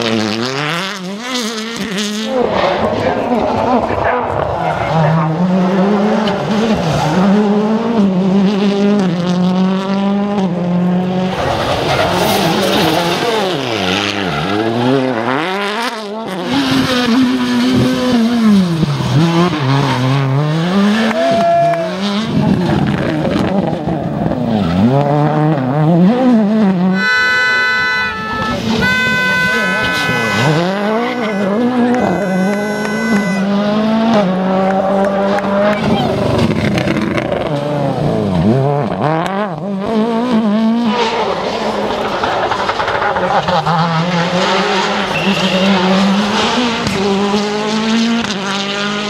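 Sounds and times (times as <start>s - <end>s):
rally car engines revving: 0.0s - 49.0s
steady high-pitched tones: 27.0s - 33.6s
tyre squeal: 27.0s - 33.8s, 45.0s - 46.1s.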